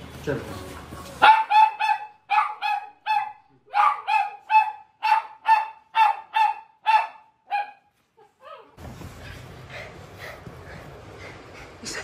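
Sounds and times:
dog barking excitedly: 1.2 - 7.9.

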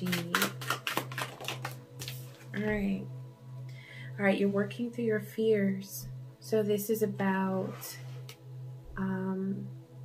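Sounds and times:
cards shuffled by hand: 0.0 - 2.5
low hum: 1.7 - 10.0.

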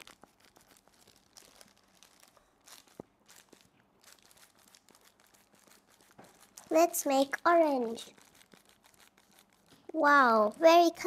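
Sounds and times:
plastic gloves rustling: 0.0 - 11.0.

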